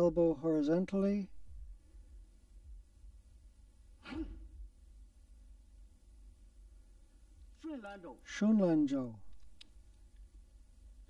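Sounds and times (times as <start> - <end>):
quiet low hum: 0.0 - 11.0
man speaking: 7.6 - 9.2.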